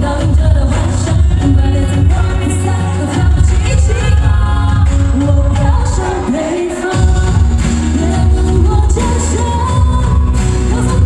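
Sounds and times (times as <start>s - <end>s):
amplified backing music: 0.0s - 11.0s
woman singing pop song: 0.0s - 11.0s.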